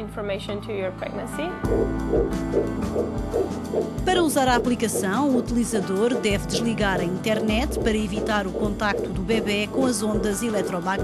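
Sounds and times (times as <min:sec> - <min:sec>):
background music: 0:00.0 - 0:11.0
fetal heartbeat pulses: 0:01.7 - 0:11.0.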